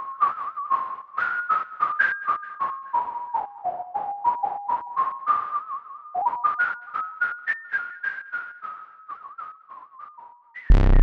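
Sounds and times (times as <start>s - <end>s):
whistle-like synthesizer notes: 0.0s - 11.0s.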